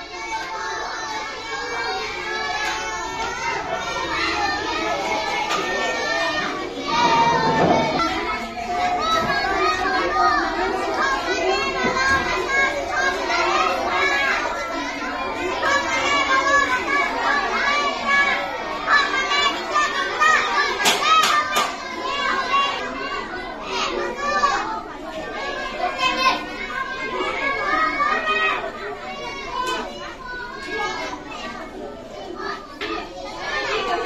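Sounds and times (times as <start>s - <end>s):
children talking over one another: 0.0s - 34.0s.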